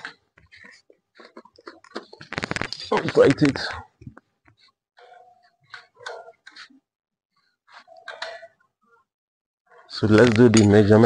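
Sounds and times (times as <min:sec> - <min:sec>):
man talking: 0:02.9 - 0:03.9, 0:09.9 - 0:11.0.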